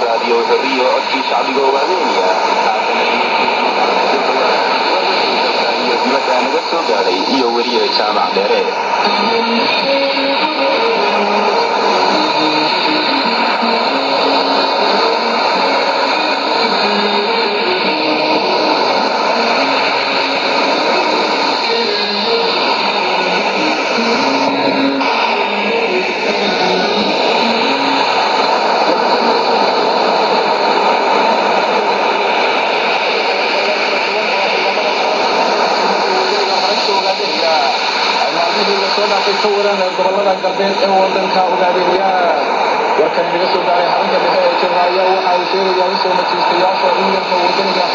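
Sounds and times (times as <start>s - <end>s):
radio hiss and noise: 0.0s - 47.9s
shortwave radio music melody: 0.0s - 47.9s.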